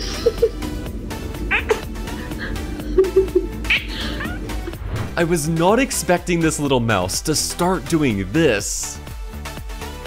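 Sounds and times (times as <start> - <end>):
background music: 0.0 - 10.0
cat meowing: 3.8 - 4.6.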